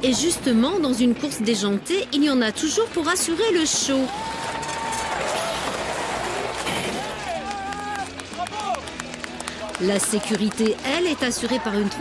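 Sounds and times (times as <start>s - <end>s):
spectators shouting and cheering: 3.8s - 12.0s
people clapping: 4.1s - 12.0s.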